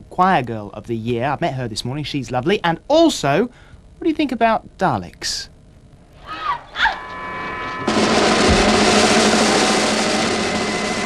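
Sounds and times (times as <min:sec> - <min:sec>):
high electronic tones: 0:06.2 - 0:11.0.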